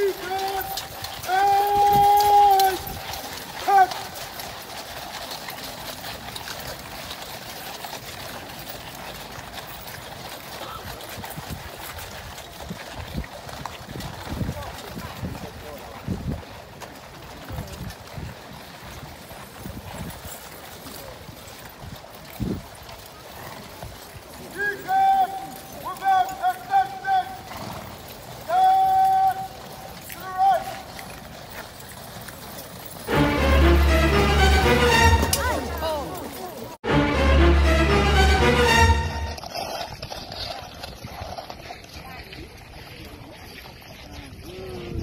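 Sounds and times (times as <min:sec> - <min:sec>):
hooves on gravel: 0:00.0 - 0:45.0
low crowd murmur: 0:33.0 - 0:39.4.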